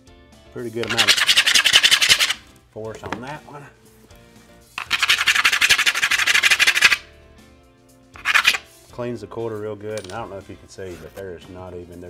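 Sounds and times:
coin scraping vinyl plank: 0.8 - 2.4, 4.8 - 7.0, 8.2 - 8.6.

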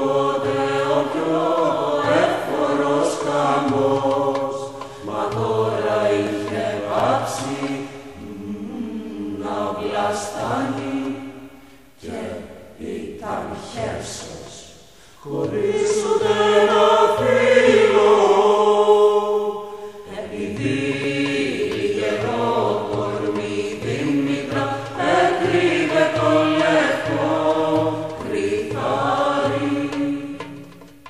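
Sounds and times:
chorus chanting slow melody: 0.0 - 31.0.

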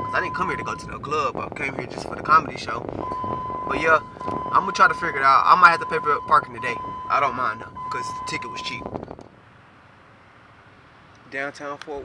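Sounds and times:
distant traffic rumble: 0.0 - 12.0.

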